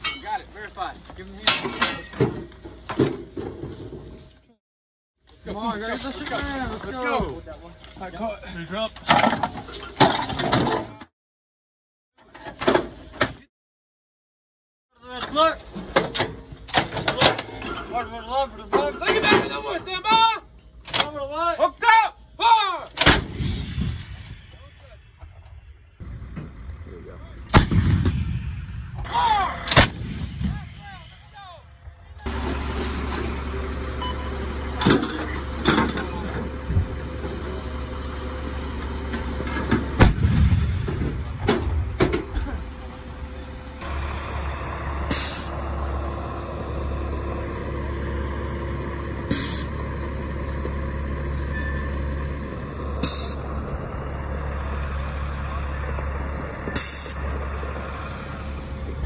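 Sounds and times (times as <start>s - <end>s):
howitzer firing booms: 23.0s - 24.2s, 27.4s - 31.2s, 40.0s - 42.0s
low engine-like drone: 23.9s - 59.0s.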